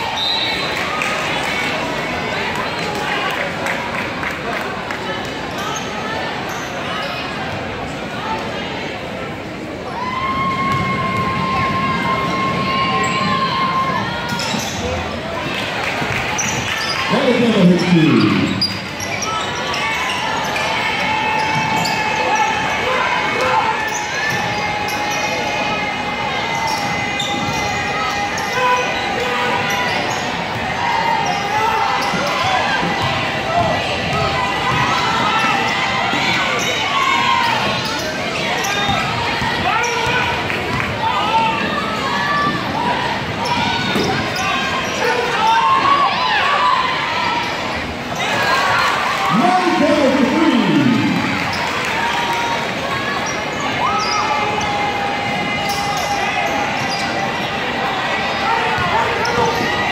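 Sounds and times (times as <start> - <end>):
crowd talking and calling out: 0.0 - 59.9
shoe squeaks: 14.3 - 14.9, 53.2 - 54.7, 55.7 - 57.2.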